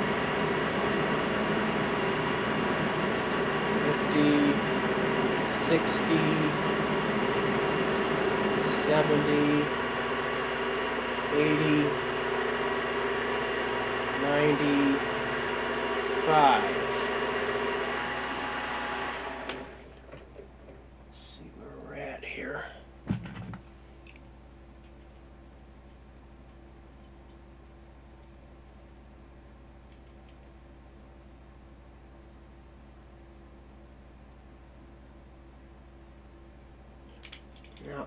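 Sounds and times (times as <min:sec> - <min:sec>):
metal lathe humming: 0:00.0 - 0:19.9.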